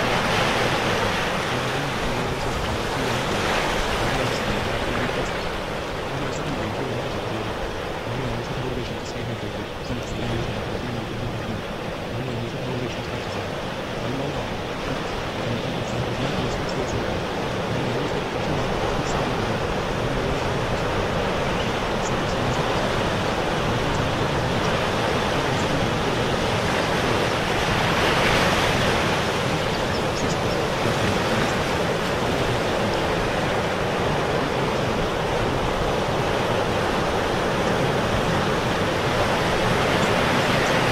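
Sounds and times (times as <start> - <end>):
ocean waves washing: 0.0 - 40.9.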